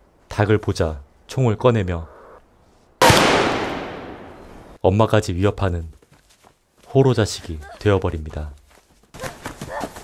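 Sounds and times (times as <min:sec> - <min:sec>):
pistol shot: 0:03.0 - 0:04.4.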